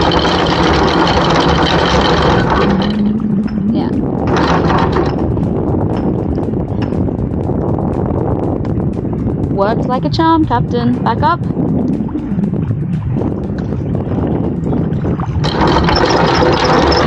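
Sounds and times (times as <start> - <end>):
anchor windlass hauling chain: 0.0 - 12.0, 12.6 - 17.0
boat engine running: 0.0 - 17.0.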